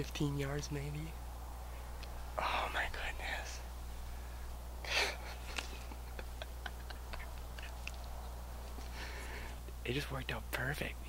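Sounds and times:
low steady hum: 0.0 - 11.0
faint irregular small clicks: 7.4 - 9.0.

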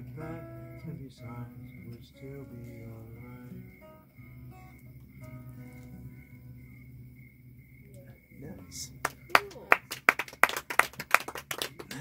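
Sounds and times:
people clapping: 8.8 - 12.0.

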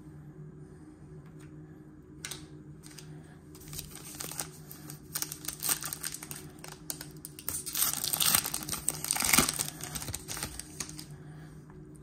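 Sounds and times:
wrapper crinkling: 3.6 - 11.1.

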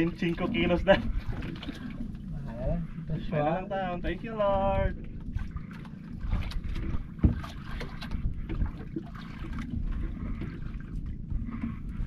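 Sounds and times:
water around boat: 0.0 - 12.0
wind buffeting microphone: 0.0 - 12.0.

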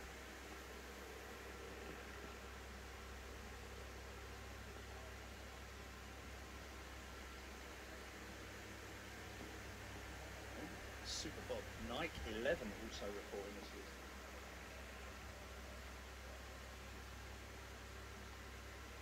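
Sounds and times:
faint steady hiss: 0.0 - 19.0.

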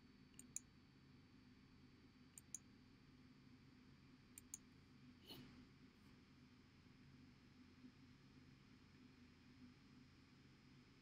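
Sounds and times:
faint double clicks: 0.4 - 0.6, 2.4 - 2.6, 4.4 - 4.6.

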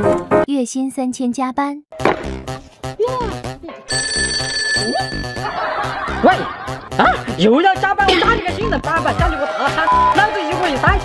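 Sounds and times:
mobile phone ringing: 3.9 - 5.9
background music with steady beat: 5.2 - 11.0.

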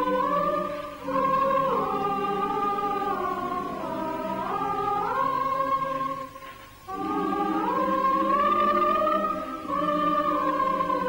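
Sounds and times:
choir holding slow chords: 0.0 - 11.0.

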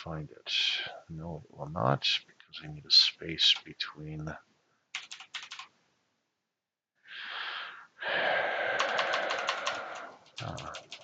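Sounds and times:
typing on computer keyboard: 4.9 - 5.7, 8.8 - 11.0
breathy exhale hiss: 7.1 - 10.7.

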